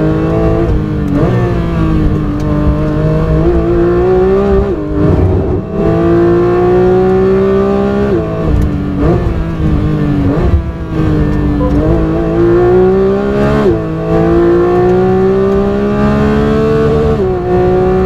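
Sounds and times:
sports car engine at full throttle: 0.0s - 18.0s.

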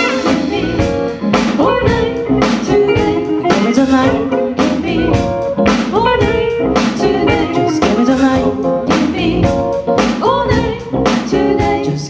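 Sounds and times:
horn section: 0.0s - 0.8s
drum kit beat: 0.0s - 12.0s
electric bass: 0.0s - 12.0s
guitar: 0.0s - 12.0s
keyboard: 0.0s - 12.0s.

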